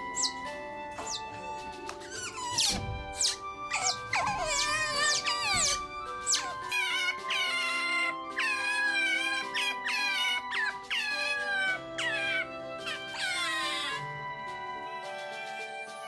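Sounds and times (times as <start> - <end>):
background music: 0.0 - 16.0
otter pup crying: 2.0 - 14.1.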